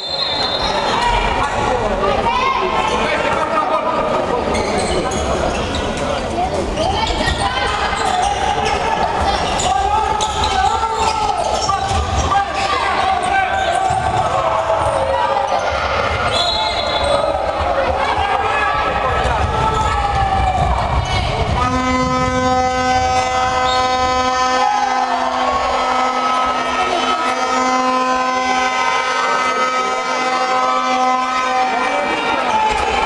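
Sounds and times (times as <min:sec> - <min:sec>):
whistle blast: 0:00.0 - 0:00.9, 0:16.2 - 0:17.3, 0:21.7 - 0:31.9
crowd shouting: 0:07.3 - 0:33.0
horn held note: 0:21.6 - 0:32.4.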